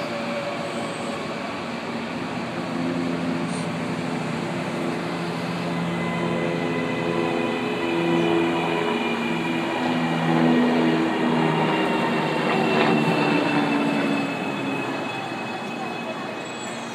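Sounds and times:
electric train pulling in: 0:00.0 - 0:16.9.

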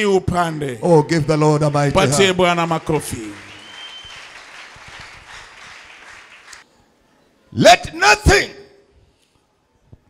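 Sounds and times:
crowd applauding: 0:01.6 - 0:06.6.

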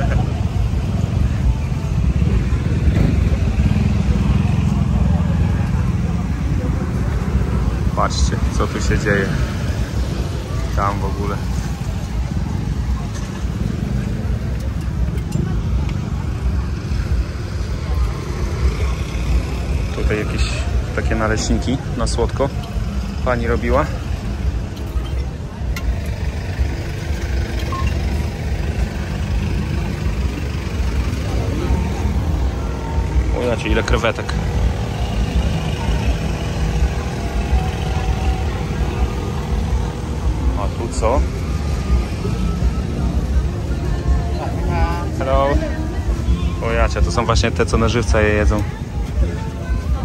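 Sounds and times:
crowd chatter: 0:00.0 - 0:50.0
passing cars and motorbikes: 0:00.0 - 0:50.0
road traffic rumble: 0:00.0 - 0:50.0.

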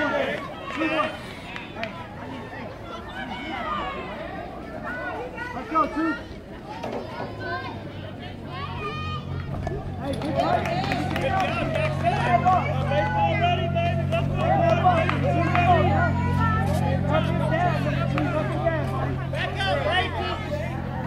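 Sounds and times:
crowd talking and calling out: 0:00.0 - 0:21.0.

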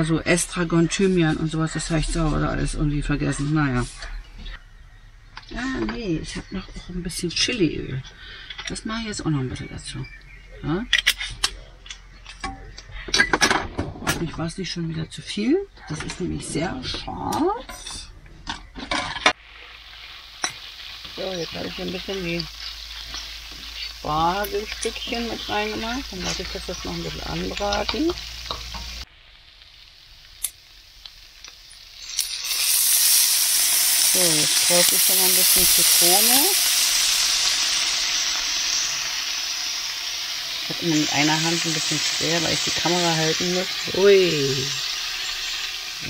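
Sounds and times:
kitchenware clinking and clattering: 0:10.9 - 0:14.6, 0:15.8 - 0:19.4
food sizzling in a pan: 0:19.3 - 0:46.0.

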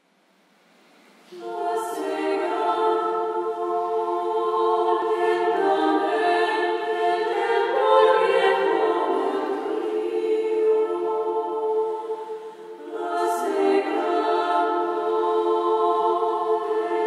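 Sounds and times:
choir singing a cappella: 0:01.3 - 0:17.0.

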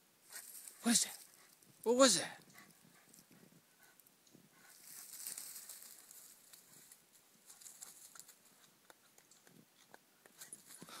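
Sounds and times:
footsteps through ferns and twigs: 0:04.7 - 0:08.5.

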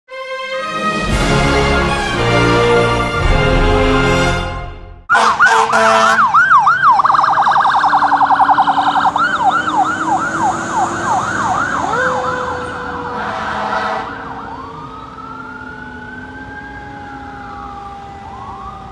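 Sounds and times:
fire engine siren: 0:00.1 - 0:04.4, 0:05.1 - 0:18.9.

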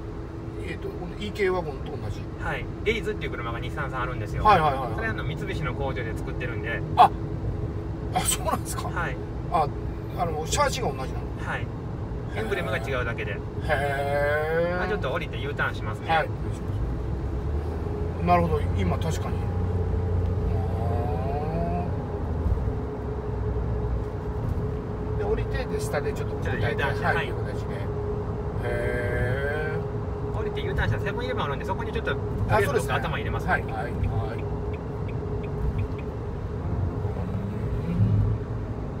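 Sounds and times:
car road and engine rumble: 0:00.0 - 0:39.0
light ticks: 0:34.0 - 0:36.1.

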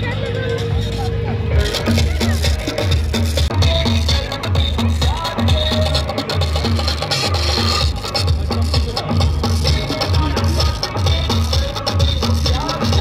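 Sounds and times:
loud music with heavy bass beat: 0:00.0 - 0:13.0.

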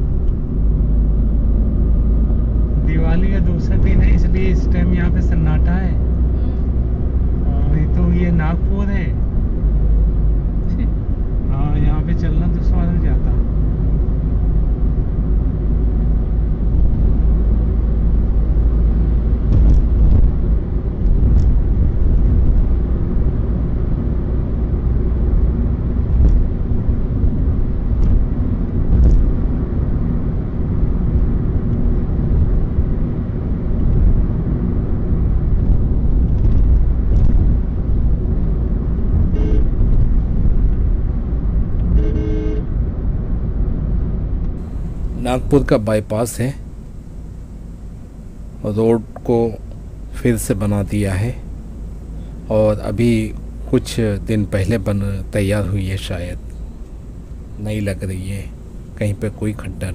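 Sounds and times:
car road and engine noise: 0:00.0 - 0:59.9
vehicle horn: 0:39.3 - 0:39.8, 0:41.9 - 0:42.7.

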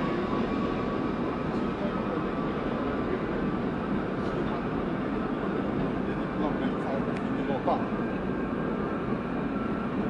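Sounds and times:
subway train rumbling: 0:00.0 - 0:10.0.

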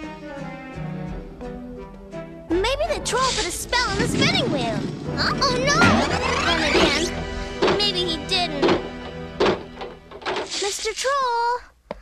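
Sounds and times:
cartoon background music: 0:00.0 - 0:10.6
sharp knocks: 0:06.8 - 0:10.5.

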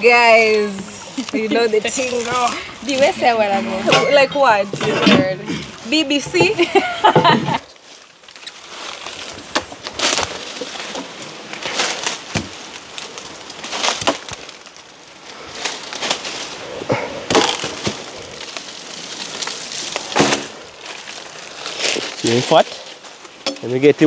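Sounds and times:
wood cracking and splintering: 0:00.5 - 0:23.8
machete chopping wood: 0:20.1 - 0:20.6.

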